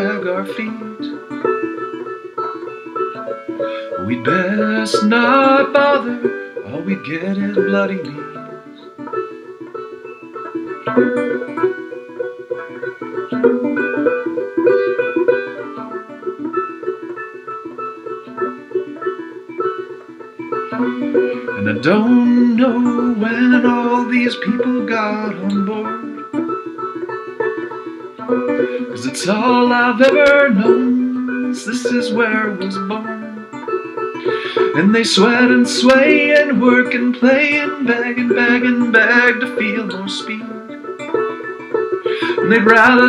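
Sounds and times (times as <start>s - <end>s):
banjo picking: 0.0s - 43.0s.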